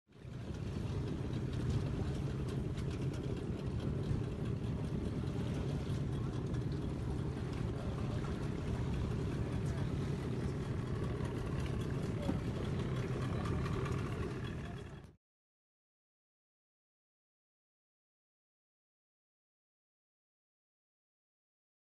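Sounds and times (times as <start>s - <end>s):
outboard motor running: 0.1s - 15.2s.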